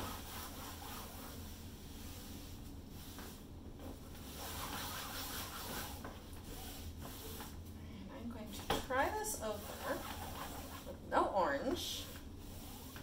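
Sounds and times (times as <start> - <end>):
paper towel rubbing on canvas: 0.0 - 3.4, 4.2 - 7.6, 9.0 - 11.0, 11.6 - 13.0.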